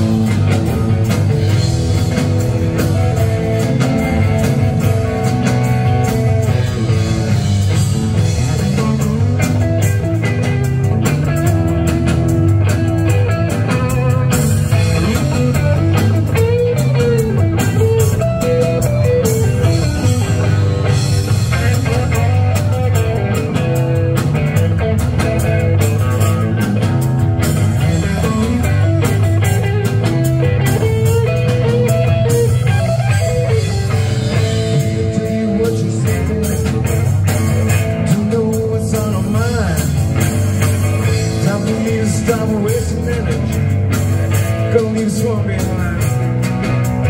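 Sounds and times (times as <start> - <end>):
blues rock band playing: 0.0 - 47.0.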